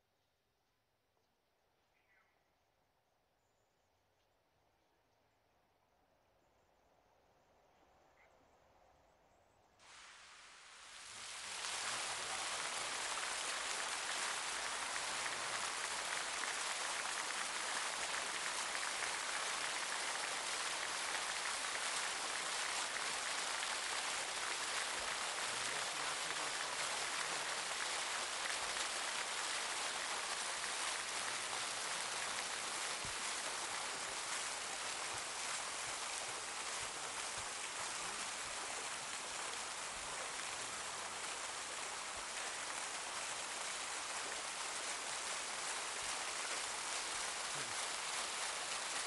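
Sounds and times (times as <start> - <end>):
fountain jets splashing into pool: 9.8 - 49.0.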